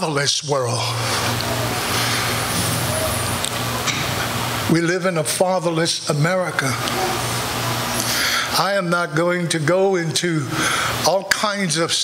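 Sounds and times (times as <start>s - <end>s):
steady low hum: 0.0s - 12.0s
loud even hiss: 0.9s - 5.7s.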